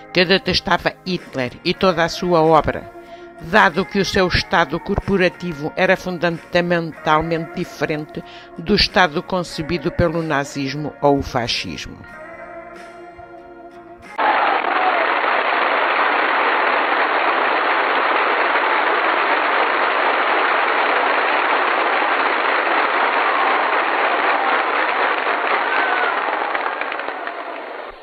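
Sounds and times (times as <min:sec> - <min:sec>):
soft music: 0:00.0 - 0:14.2
crowd applause: 0:14.2 - 0:28.0.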